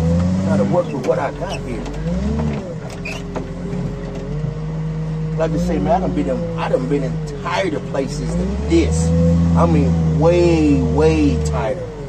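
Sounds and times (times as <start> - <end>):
diesel engine and hydraulics running: 0.0 - 12.0.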